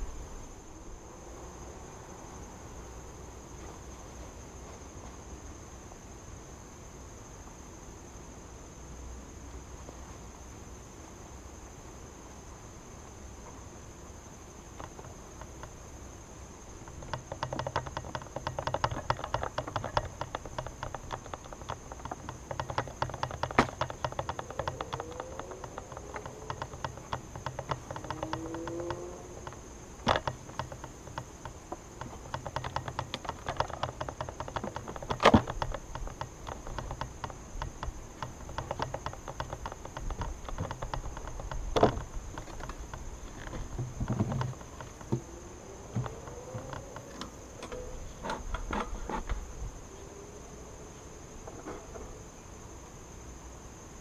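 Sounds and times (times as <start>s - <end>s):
wooden hive covers knocking: 16.8s - 45.3s.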